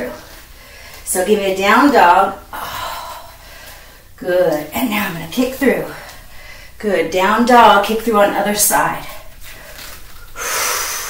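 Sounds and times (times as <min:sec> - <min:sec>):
woman exhaling heavily: 0:10.4 - 0:11.0.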